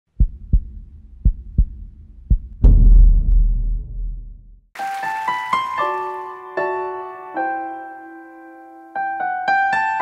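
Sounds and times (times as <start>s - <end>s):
low heartbeat-like thumps: 0.1s - 4.7s
deep rumbling boom: 2.3s - 4.7s.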